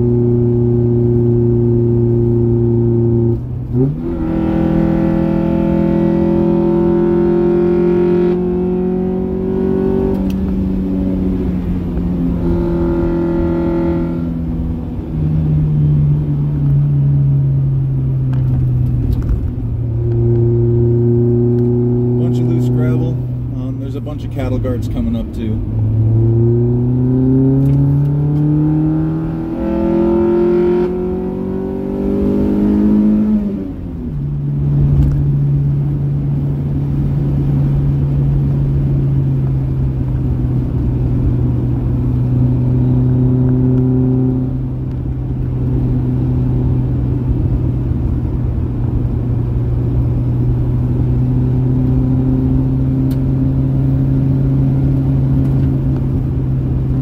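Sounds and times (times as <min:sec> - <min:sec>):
car engine accelerating through gears: 0:00.0 - 0:57.0
road noise: 0:00.0 - 0:57.0.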